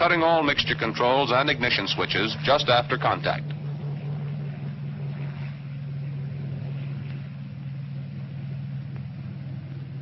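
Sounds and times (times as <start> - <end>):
low drone with hiss: 0.0 - 10.0.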